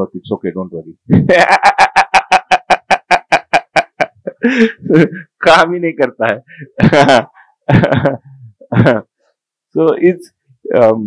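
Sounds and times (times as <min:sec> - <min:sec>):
man laughing heartily: 0:01.1 - 0:05.4, 0:06.6 - 0:09.1.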